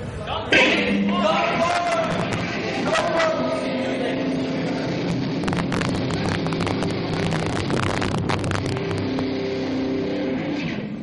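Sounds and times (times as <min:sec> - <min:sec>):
distorted electric guitar chord: 0:00.7 - 0:11.0.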